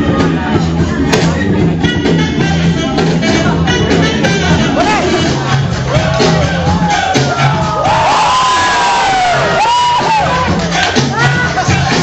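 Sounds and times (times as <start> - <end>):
music with a beat over speakers: 0.0 - 12.0
crowd cheering: 4.6 - 12.0
rising and falling whoops: 5.9 - 10.4.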